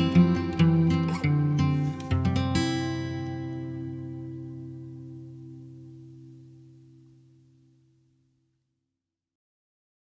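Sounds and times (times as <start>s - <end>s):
acoustic guitar chord ringing: 0.0s - 8.6s.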